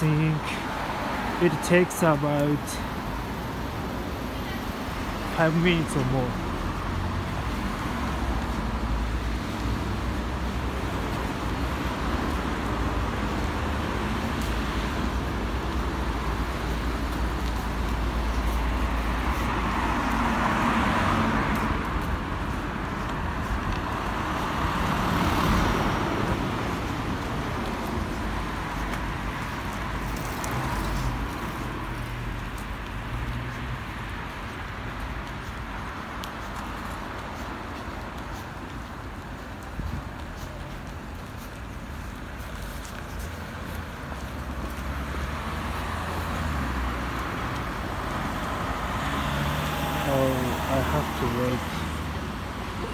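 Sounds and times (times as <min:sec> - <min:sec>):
cars passing close: 0:00.0 - 0:52.9
road traffic hum: 0:00.0 - 0:52.9.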